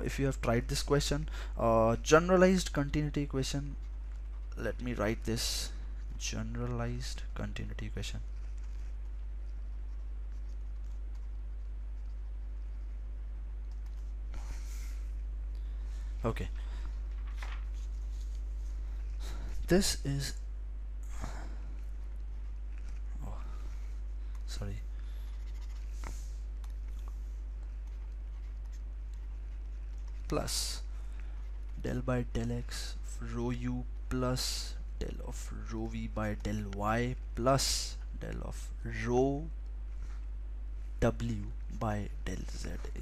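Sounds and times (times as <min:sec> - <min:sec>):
low electrical hum: 0:00.0 - 0:43.0.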